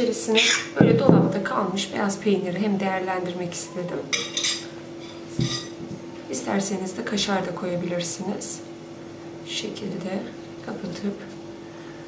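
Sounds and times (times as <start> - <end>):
metal spoon clinking on plate: 4.1 - 4.7, 5.4 - 5.8.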